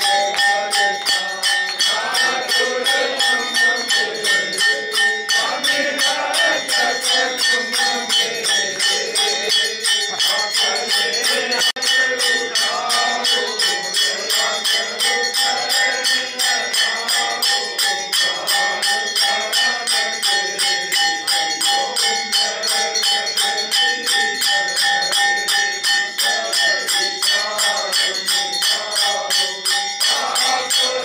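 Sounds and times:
bells ringing fast: 0.0s - 31.0s.

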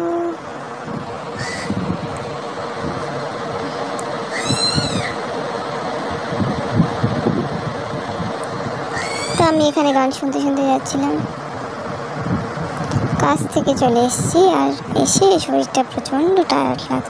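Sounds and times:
faint hum: 0.0s - 17.0s
wind noise: 0.8s - 5.3s, 6.0s - 17.0s
high warbling chirp: 1.3s - 1.8s, 4.3s - 5.3s, 8.9s - 10.1s.

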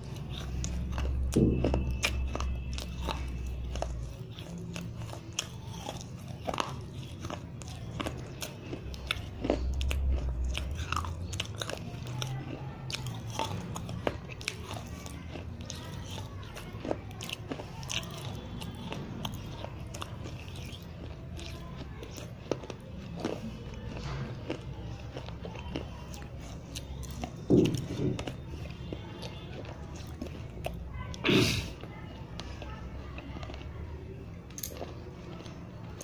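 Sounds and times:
chalk crunched and chewed: 0.0s - 36.0s.

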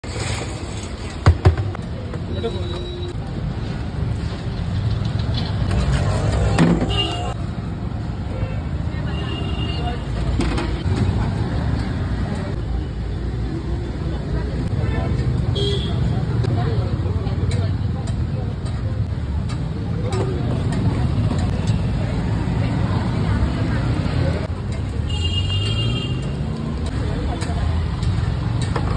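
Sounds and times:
traffic rumble: 0.0s - 28.9s
people talking: 13.6s - 25.3s, 26.9s - 28.1s.

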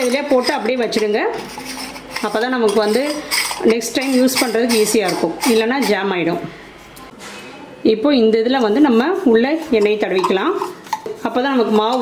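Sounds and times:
woman speaking: 0.0s - 7.2s, 7.8s - 12.0s.

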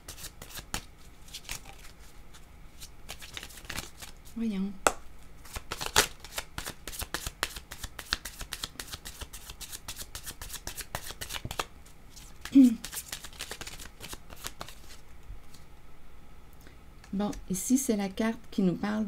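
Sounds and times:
cards being shuffled: 0.1s - 4.4s, 5.4s - 15.7s.

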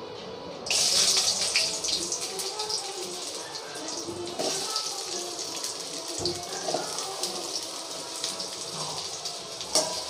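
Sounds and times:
garlic sizzling in hot oil: 0.7s - 10.0s.

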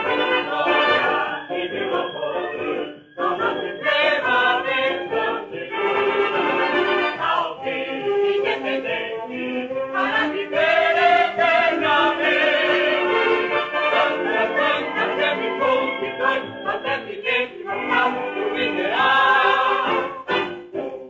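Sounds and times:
choir singing an anthem: 0.0s - 20.3s
instrumental accompaniment: 0.0s - 21.0s.

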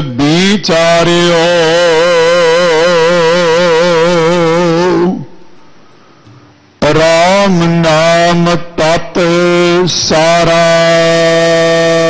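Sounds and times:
man singing with vibrato: 0.0s - 5.8s, 6.8s - 12.0s.

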